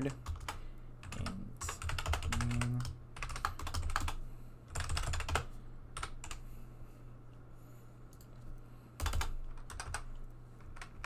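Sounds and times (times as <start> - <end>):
fast typing on a keyboard: 0.0 - 6.4, 9.0 - 11.0.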